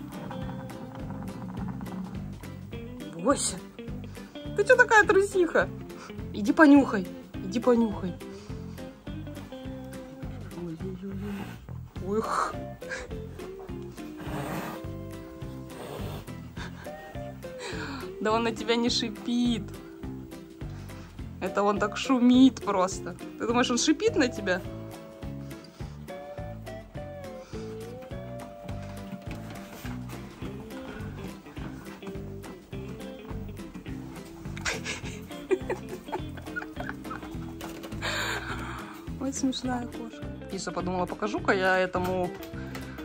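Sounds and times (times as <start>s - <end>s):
background music: 0.0s - 43.0s
leopard hissing: 11.1s - 13.2s, 13.9s - 18.1s.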